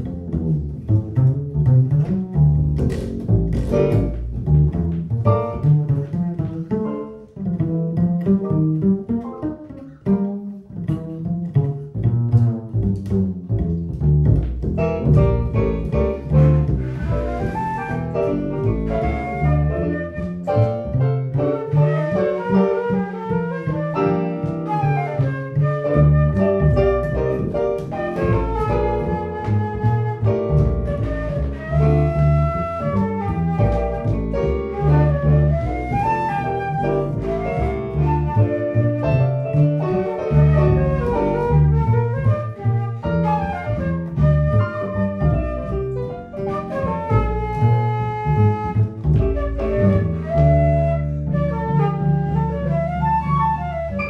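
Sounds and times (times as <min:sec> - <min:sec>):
piano: 0:00.0 - 0:54.0
plucked double bass: 0:00.0 - 0:54.0
flute melody: 0:02.8 - 0:07.8, 0:14.8 - 0:54.0.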